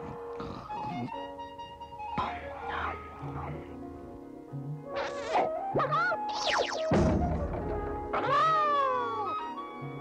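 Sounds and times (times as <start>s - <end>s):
background music: 0.0s - 10.0s
cartoon thump: 6.8s - 8.3s.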